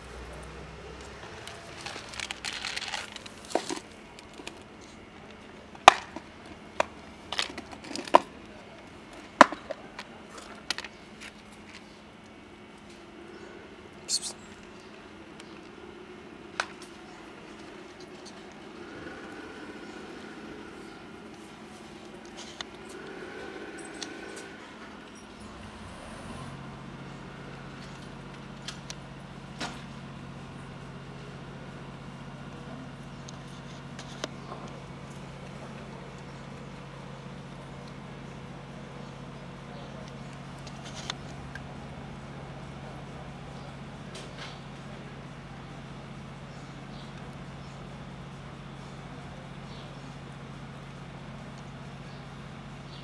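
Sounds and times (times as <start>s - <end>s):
engine idling: 0.0s - 53.0s
cat crunching dry kibble: 1.0s - 5.4s.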